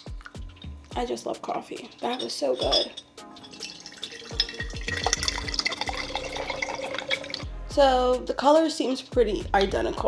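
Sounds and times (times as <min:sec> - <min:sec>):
liquid glugging into glass: 0:01.9 - 0:07.4.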